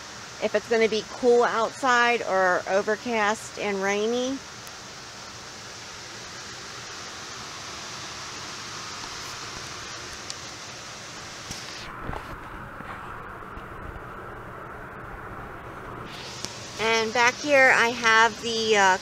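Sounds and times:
rushing air noise: 4.8 - 19.0.

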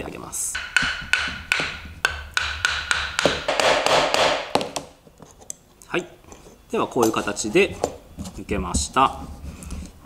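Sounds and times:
hammer knocking on wooden plane: 0.6 - 4.9.

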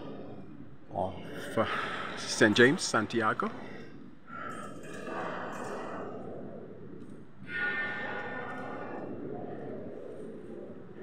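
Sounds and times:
faint echoing voices: 0.0 - 11.0
reverberant room tone: 0.0 - 11.0.

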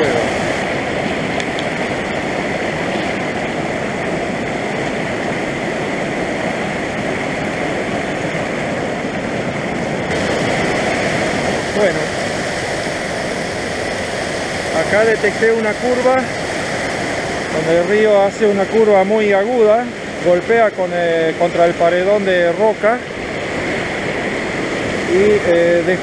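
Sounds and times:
stream rushing over boulders: 0.0 - 26.0.

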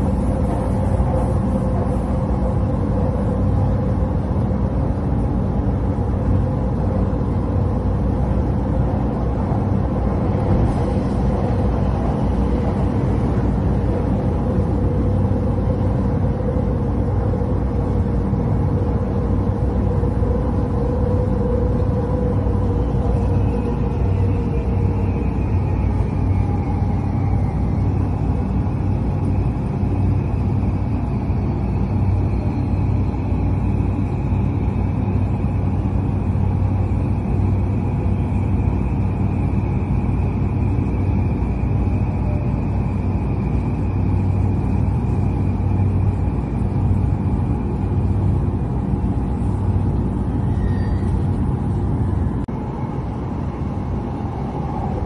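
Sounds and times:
faint high whine: 0.0 - 55.0
train rumbling from inside: 0.0 - 55.0.

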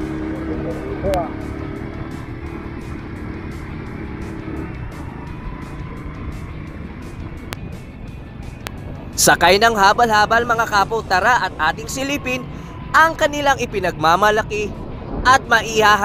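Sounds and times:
motorcycle engine climbing: 0.0 - 15.6.

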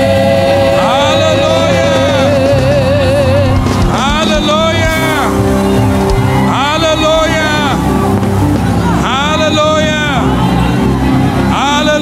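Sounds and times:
band sustained chords: 0.0 - 12.0.

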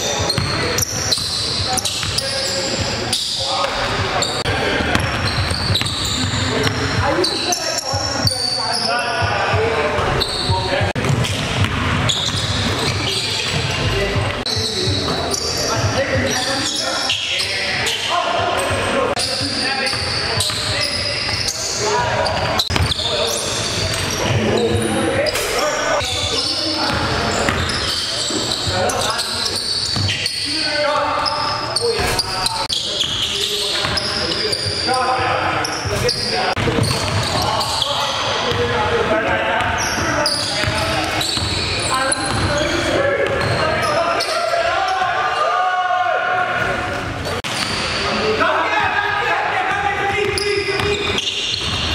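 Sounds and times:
voices echoing in a hall: 0.0 - 51.9
basketball bouncing on wooden floor: 4.8 - 6.8, 10.9 - 15.1.

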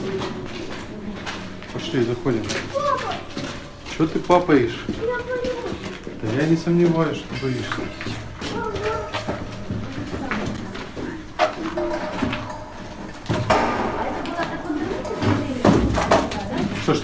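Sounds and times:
man speaking: 6.2 - 8.0.

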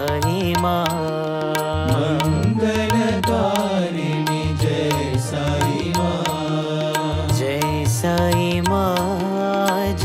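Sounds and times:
devotional singing: 0.0 - 10.0
percussion beat: 0.0 - 10.0.

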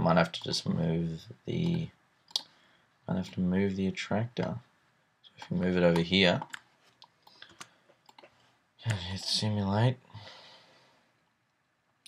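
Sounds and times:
person speaking: 0.0 - 2.4, 5.3 - 6.6, 8.8 - 10.1
computer mouse clicks: 6.0 - 8.3.

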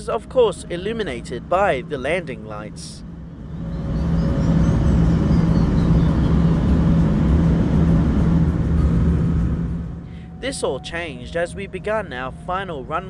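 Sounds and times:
faint high whine: 0.0 - 13.0
jet cabin engine rumble: 0.6 - 12.9.

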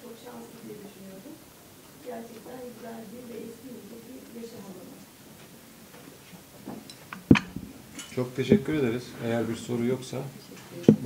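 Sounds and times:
sharp knock: 7.2 - 7.7.

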